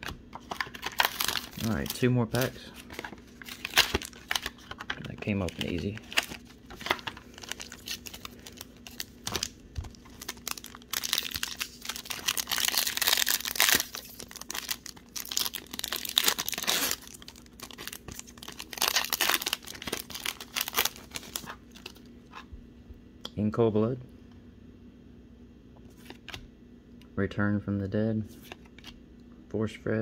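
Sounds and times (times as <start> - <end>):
foil wrapper crinkling and tearing: 0.4 - 22.0.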